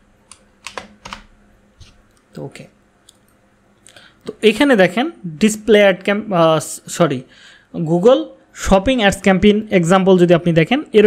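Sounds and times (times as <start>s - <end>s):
computer keyboard keystrokes: 0.3s - 1.3s.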